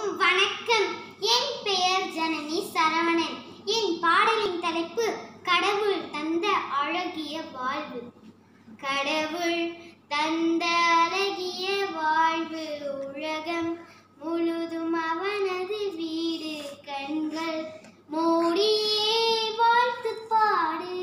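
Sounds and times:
girl singing unaccompanied: 8.8 - 21.0.

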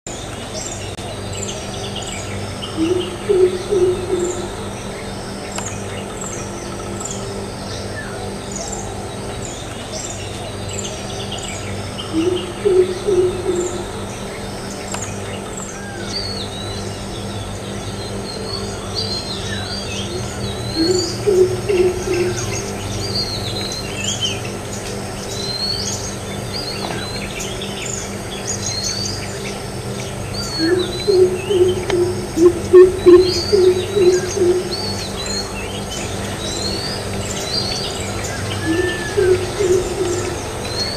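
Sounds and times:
high insect drone: 0.1 - 40.9
steady low hum: 0.1 - 40.9
small birds chirping: 0.2 - 40.9
deep bird hoots: 2.8 - 4.7, 12.1 - 14.0, 20.1 - 22.8, 30.4 - 35.5, 38.5 - 40.9.

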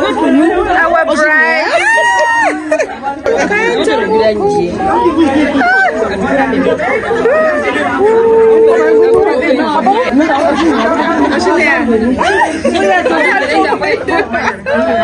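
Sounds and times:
women chattering excitedly: 0.0 - 15.0.

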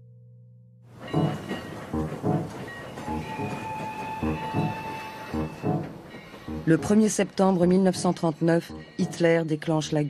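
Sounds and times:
train wheels clacking on rails: 1.0 - 7.3
train whistle: 1.1 - 6.6.

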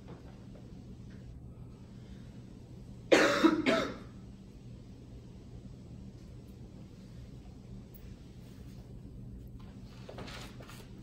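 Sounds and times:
person coughing: 3.1 - 4.2.

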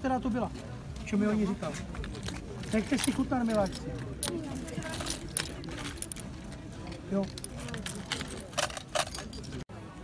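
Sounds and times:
metal jewellery jingling in a box: 1.9 - 9.7.

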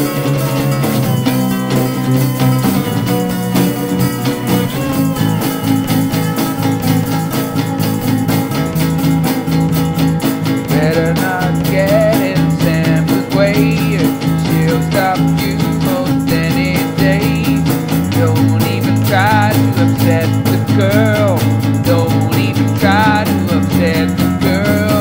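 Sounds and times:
instrumental rock music: 0.0 - 25.0
wavering guitar lead melody: 0.0 - 25.0.

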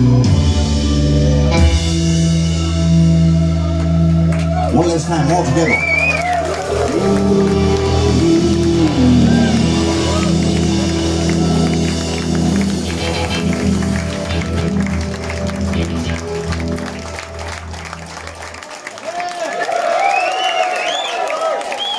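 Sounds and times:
live blues band: 0.0 - 18.6
audience cheering and applauding: 3.4 - 21.9.

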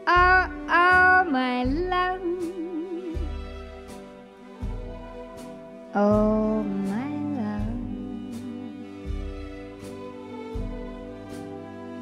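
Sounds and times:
woman singing a slow ballad: 0.0 - 3.6, 5.9 - 9.1
quiet instrumental accompaniment: 0.0 - 12.0.

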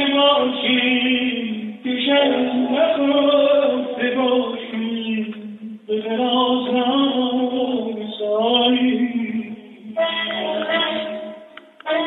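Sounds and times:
man singing ornamented notes: 0.0 - 12.0
lute accompaniment: 9.3 - 12.0.

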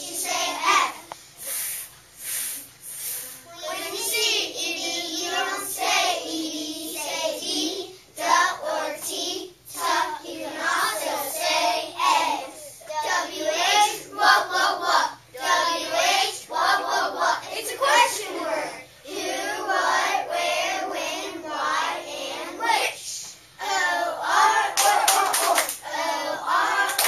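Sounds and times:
children chanting in unison: 3.0 - 23.0, 23.6 - 27.0.

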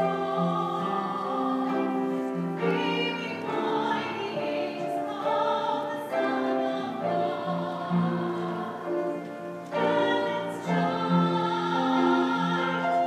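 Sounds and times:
voices singing in harmony: 0.0 - 13.0.

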